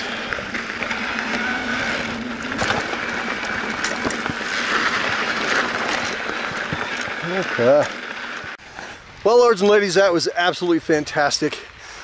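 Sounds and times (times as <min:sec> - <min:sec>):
bike clicks and rattles: 0:00.0 - 0:09.0
bike tyres rolling on dirt: 0:00.0 - 0:12.0.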